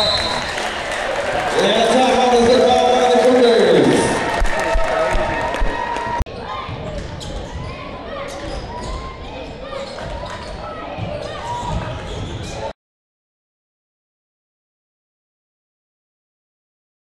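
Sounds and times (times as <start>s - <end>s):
crowd chatter: 0.0s - 12.7s.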